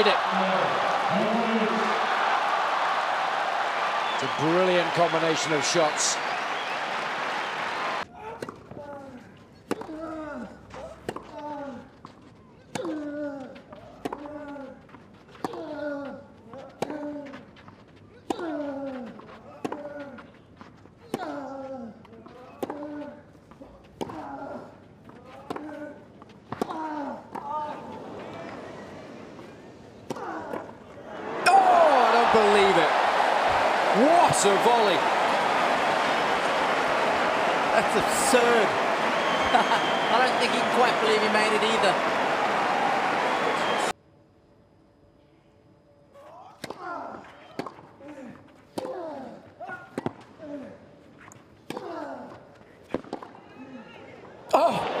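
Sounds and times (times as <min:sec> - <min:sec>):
crowd applauding: 0:00.0 - 0:08.1, 0:31.1 - 0:43.9
crowd cheering: 0:00.0 - 0:08.1, 0:27.3 - 0:44.0, 0:53.6 - 0:55.0.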